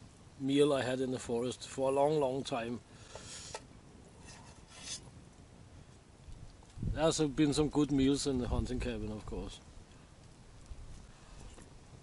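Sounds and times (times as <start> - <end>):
spoon scraping metal pot: 3.1 - 3.6, 4.2 - 5.1.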